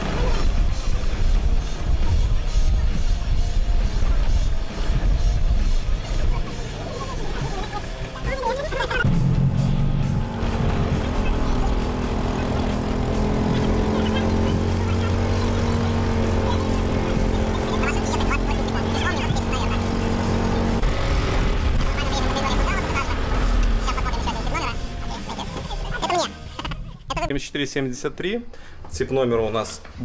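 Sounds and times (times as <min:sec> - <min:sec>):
golf cart motor hum: 0:00.0 - 0:26.0.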